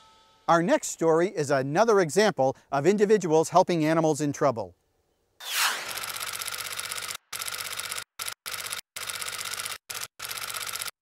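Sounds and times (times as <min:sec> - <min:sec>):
falling whoosh: 0:05.4 - 0:06.5
rapid mechanical clicking: 0:06.0 - 0:11.0.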